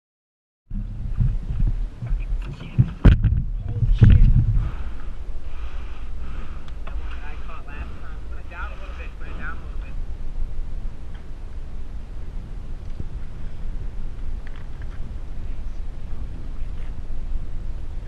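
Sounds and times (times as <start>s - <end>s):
loud knocks: 0.7s - 4.6s
wind buffeting microphone: 0.7s - 18.0s.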